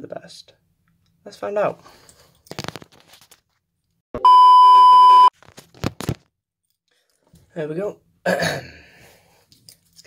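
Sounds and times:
electronic beep: 0:04.2 - 0:05.3.

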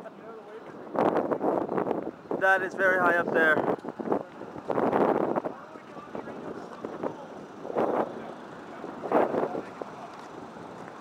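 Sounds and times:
traffic passing: 0:00.0 - 0:11.0
wind on microphone: 0:00.8 - 0:10.0.

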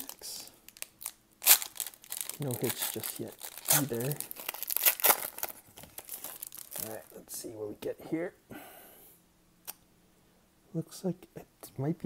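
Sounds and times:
foil wrapper crinkling and tearing: 0:00.0 - 0:07.1.

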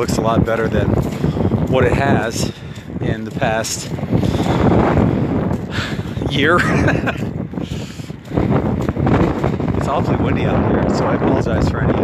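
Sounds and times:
wind rushing into microphone: 0:00.0 - 0:12.0.

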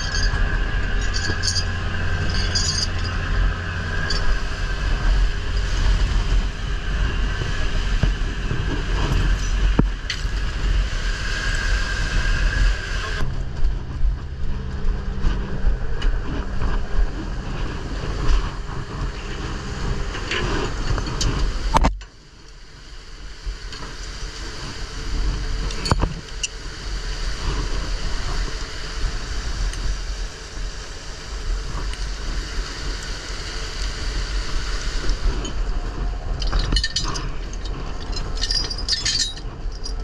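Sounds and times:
boat engine rumbling: 0:00.0 - 0:40.0
rushing sea water: 0:00.0 - 0:40.0
wind: 0:00.0 - 0:40.0.

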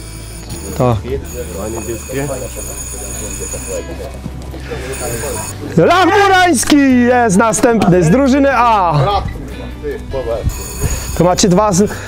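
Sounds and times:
bell ringing: 0:00.0 - 0:04.1, 0:04.9 - 0:05.6, 0:10.5 - 0:12.0
murmur of crowd: 0:00.5 - 0:12.0.

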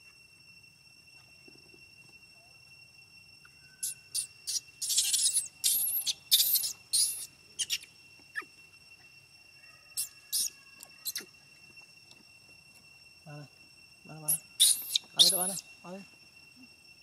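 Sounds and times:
baby monkey screaming: 0:03.8 - 0:08.5, 0:09.9 - 0:11.3, 0:14.3 - 0:15.7.

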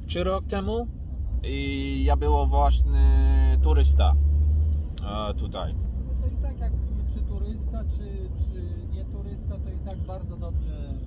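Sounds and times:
car cabin low rumble: 0:00.0 - 0:11.0.

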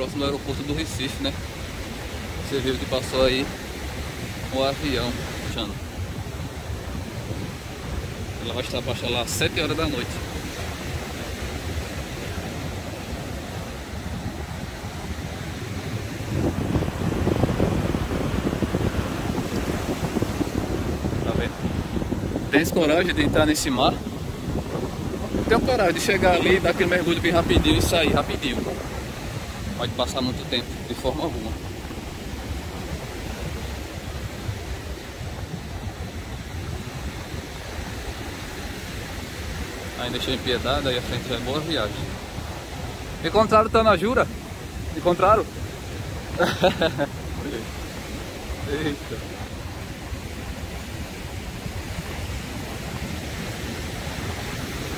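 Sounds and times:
surf washing onto beach: 0:00.0 - 0:54.9
wind buffeting microphone: 0:00.0 - 0:54.9.

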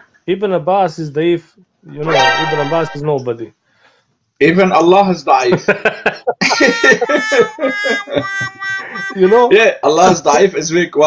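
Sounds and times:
man laughing: 0:05.5 - 0:09.7.

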